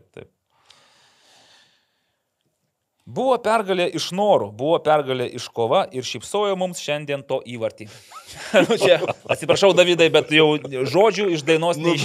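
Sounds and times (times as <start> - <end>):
faint breath-like hiss: 0.5 - 2.2.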